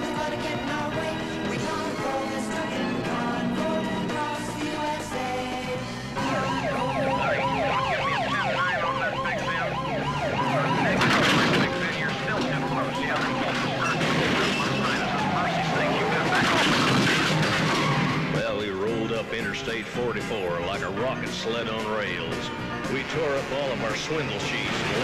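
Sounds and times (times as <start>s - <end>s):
low engine rumble: 0.0s - 22.0s
police sirens wailing: 0.0s - 25.0s.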